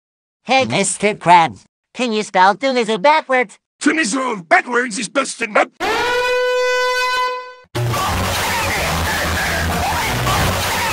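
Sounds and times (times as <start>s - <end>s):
cartoon character yelling: 5.8s - 6.5s.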